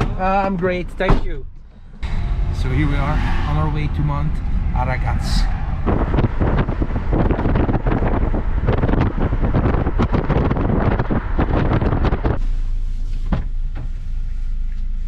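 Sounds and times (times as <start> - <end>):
car engine and road hum: 0.0 - 15.0
wind buffeting microphone: 2.0 - 12.4.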